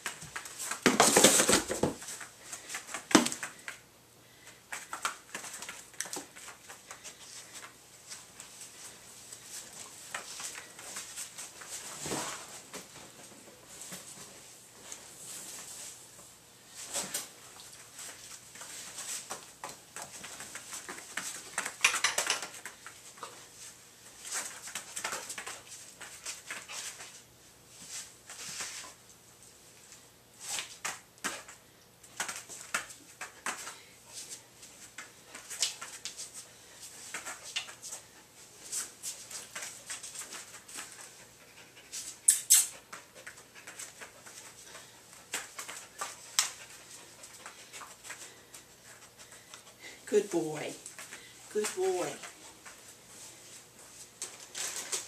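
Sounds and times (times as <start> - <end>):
dog scuffing and clicking: 16.8 - 29.0, 30.4 - 49.8, 50.8 - 55.0.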